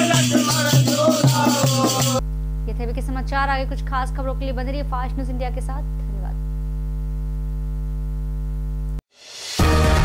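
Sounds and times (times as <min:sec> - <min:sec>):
electrical mains hum: 0:02.2 - 0:09.0.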